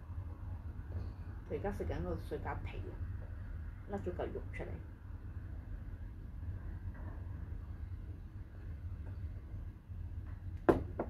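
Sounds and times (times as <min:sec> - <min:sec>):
low steady hum: 0:00.0 - 0:11.0
plastic cup knocking on table: 0:10.7 - 0:11.0.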